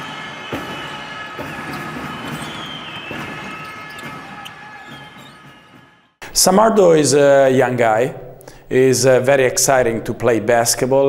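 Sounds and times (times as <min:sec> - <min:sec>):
basketball dribbling: 0:01.4 - 0:05.8
high squeaks: 0:01.6 - 0:05.8.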